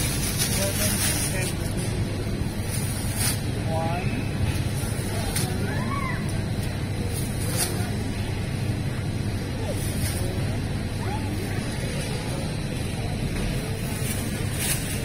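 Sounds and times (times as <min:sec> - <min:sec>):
plastic bag crinkling: 0:00.0 - 0:01.8
distant voices: 0:00.0 - 0:15.0
low store hum: 0:00.0 - 0:15.0.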